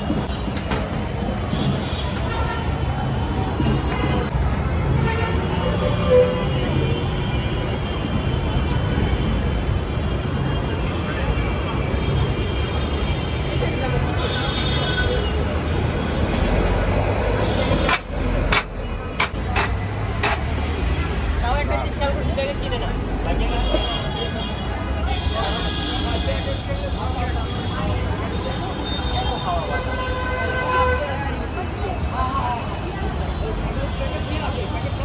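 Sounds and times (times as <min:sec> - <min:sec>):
traffic rumble: 0:00.0 - 0:35.0
people's voices: 0:10.4 - 0:35.0.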